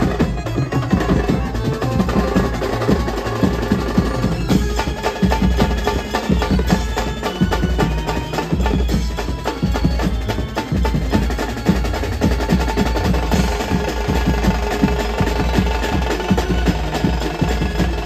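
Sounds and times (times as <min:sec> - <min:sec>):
cymbals: 0:00.0 - 0:18.0
drums beating fast rhythms: 0:00.0 - 0:18.0
held melody line: 0:00.0 - 0:18.0
steel drums: 0:00.0 - 0:18.0.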